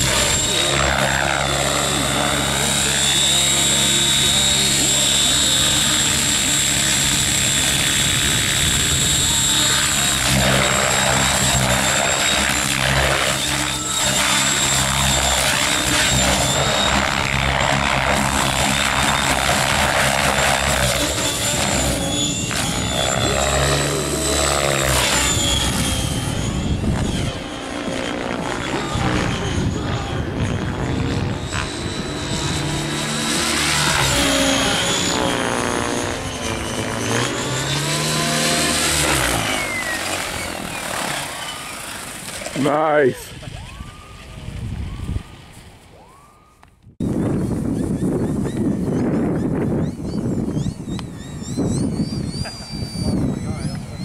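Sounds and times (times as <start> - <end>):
toy helicopter rotor whine: 0.0 - 54.0.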